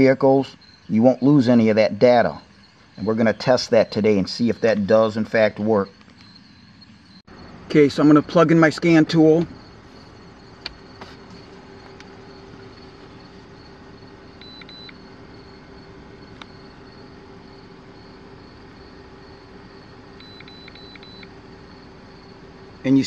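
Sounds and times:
faint electronic beeps: 0.0s - 8.3s, 9.5s - 23.0s
car engine idling: 0.0s - 23.0s.

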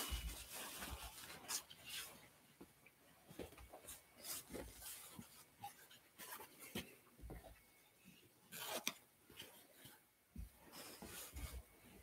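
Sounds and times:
cloth and paper rustling: 0.0s - 2.3s, 3.4s - 7.4s, 8.5s - 12.0s.

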